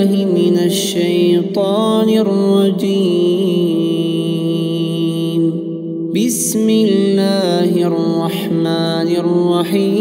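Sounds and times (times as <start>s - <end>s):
man reciting melodically: 0.0s - 10.0s.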